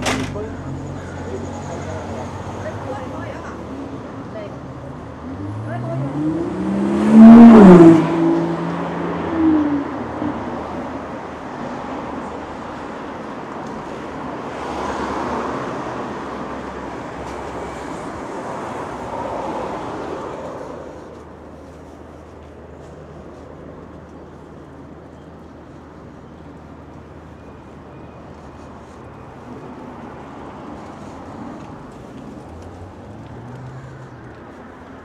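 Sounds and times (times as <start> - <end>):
passing traffic: 0.0 - 35.0
car accelerating past: 5.2 - 10.1.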